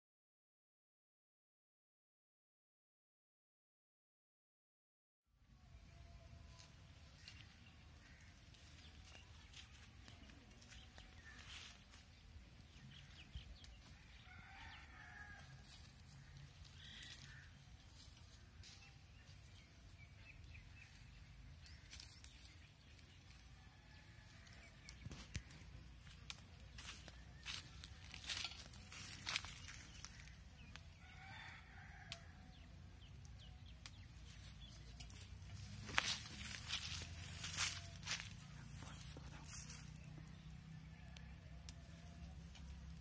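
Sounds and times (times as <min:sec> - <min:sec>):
clicks of branches being picked: 0:06.5 - 0:14.7, 0:15.4 - 0:43.0
faint rooster crowing: 0:12.7 - 0:19.0, 0:23.1 - 0:25.6, 0:26.7 - 0:33.2, 0:35.9 - 0:43.0.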